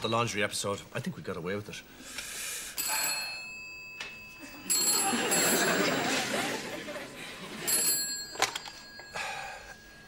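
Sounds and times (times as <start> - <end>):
desk telephone ringing: 2.8 - 6.7, 7.4 - 10.0.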